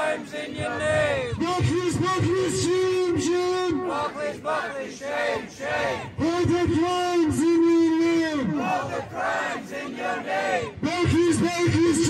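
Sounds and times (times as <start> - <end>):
crowd chanting: 0.0 - 1.4, 3.7 - 6.2, 8.4 - 10.8
man chanting through speaker: 0.6 - 3.9, 6.0 - 8.7, 10.6 - 12.0.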